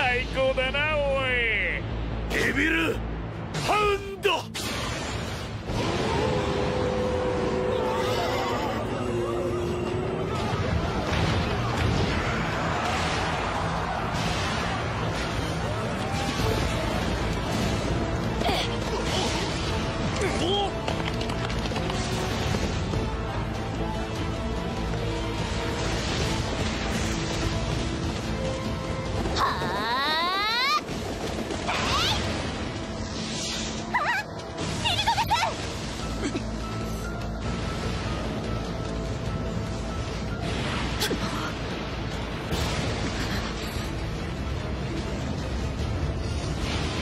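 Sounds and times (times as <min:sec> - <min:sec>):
dramatic music: 0:00.0 - 0:47.0
rushing energy blast: 0:04.6 - 0:18.4
rising-and-falling cry: 0:06.0 - 0:10.3.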